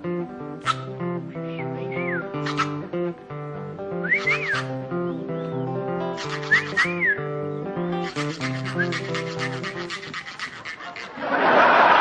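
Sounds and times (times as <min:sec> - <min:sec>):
acoustic guitar music: 0:00.0 - 0:10.6
fast scraping percussion: 0:02.4 - 0:02.8, 0:06.2 - 0:07.0, 0:08.0 - 0:11.2.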